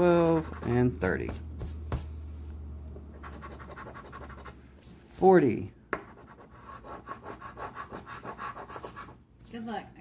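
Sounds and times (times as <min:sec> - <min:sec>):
scratching a scratch-off ticket: 0:00.0 - 0:01.5, 0:03.2 - 0:04.6, 0:06.1 - 0:09.2.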